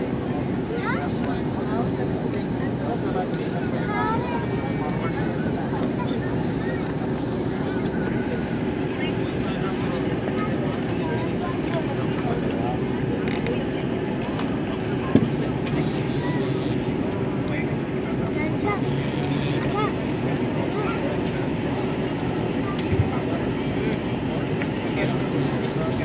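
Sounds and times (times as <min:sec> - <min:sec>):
faint passenger chatter: 0:00.0 - 0:26.0
jet cabin engine noise: 0:00.0 - 0:26.0.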